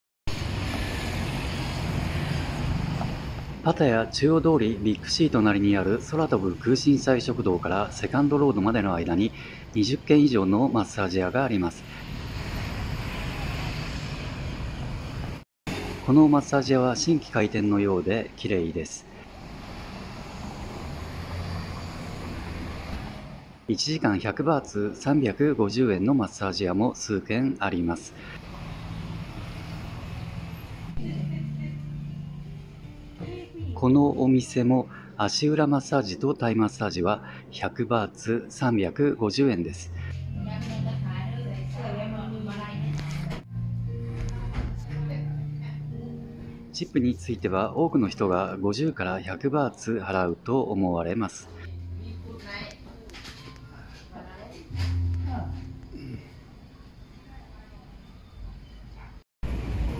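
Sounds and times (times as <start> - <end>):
vehicle engine hum: 0.3 - 3.7, 19.1 - 23.7, 28.2 - 33.8
passing cars and motorbikes: 0.3 - 8.8, 11.0 - 18.4, 19.0 - 23.7, 27.4 - 33.4
traffic rumble: 0.3 - 25.6, 27.4 - 33.8, 51.6 - 59.9
road noise: 0.3 - 59.9.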